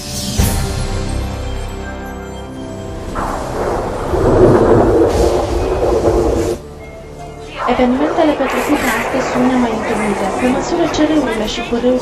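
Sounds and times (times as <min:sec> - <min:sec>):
loud dense rumble: 0:03.0 - 0:06.8, 0:07.5 - 0:12.0.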